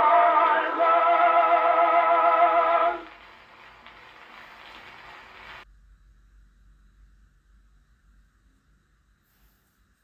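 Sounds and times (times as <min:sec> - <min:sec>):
phonograph surface hiss and rumble: 0:01.4 - 0:10.0.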